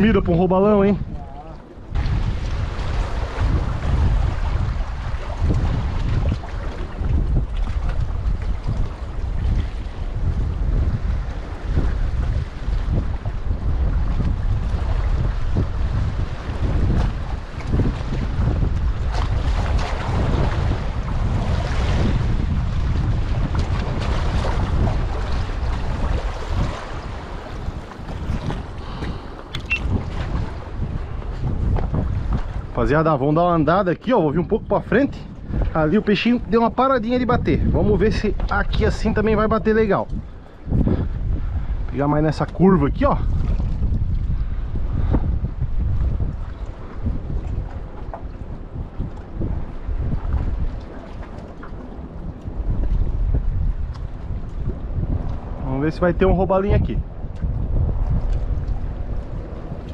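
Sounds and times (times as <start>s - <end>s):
wind buffeting microphone: 0.0s - 59.9s
waves lapping against rocks: 1.0s - 34.2s, 37.9s - 56.0s, 56.6s - 59.9s.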